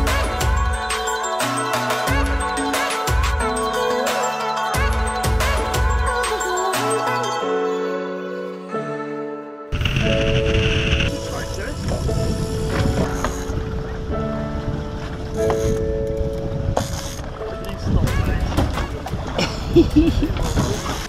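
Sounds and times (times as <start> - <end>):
background music: 0.0 - 20.3
wind and sea noise: 9.7 - 21.0
knocks on boat: 18.1 - 19.4.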